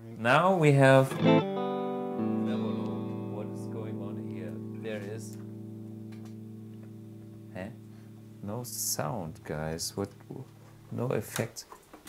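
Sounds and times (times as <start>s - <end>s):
electric guitar chord ringing: 1.1s - 11.3s.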